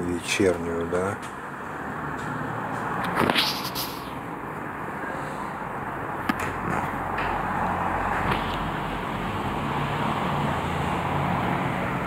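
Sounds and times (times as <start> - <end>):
distant road traffic hum: 0.0 - 12.0.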